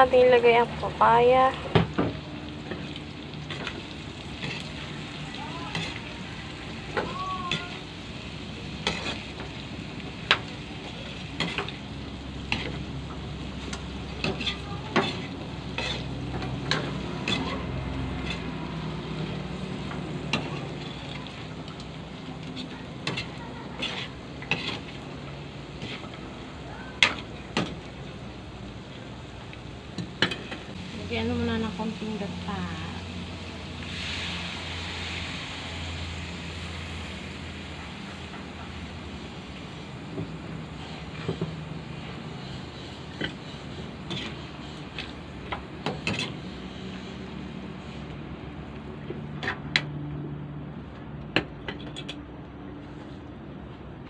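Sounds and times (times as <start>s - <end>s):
food sizzling in a wok: 0.0s - 48.7s
utensil scraping a pan: 2.6s - 4.9s, 5.6s - 6.2s, 8.7s - 9.5s, 13.6s - 18.9s, 22.5s - 25.1s, 25.7s - 26.2s, 40.7s - 47.2s.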